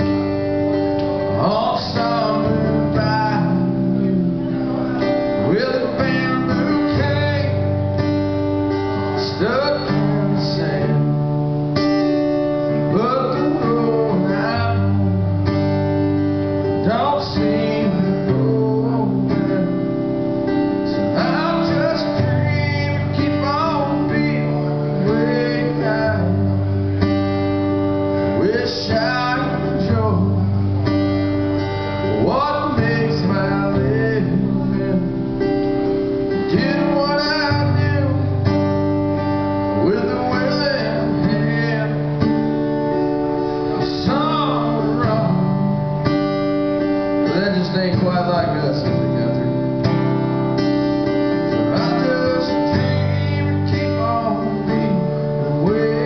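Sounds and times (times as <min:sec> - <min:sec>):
acoustic guitar strumming: 0:00.0 - 0:56.0
person singing: 0:51.5 - 0:56.0.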